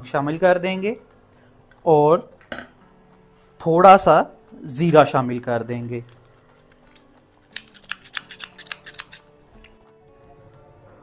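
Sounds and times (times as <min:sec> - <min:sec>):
faint background music: 0:00.0 - 0:11.0
spoon stirring sticky chutney: 0:04.5 - 0:09.8.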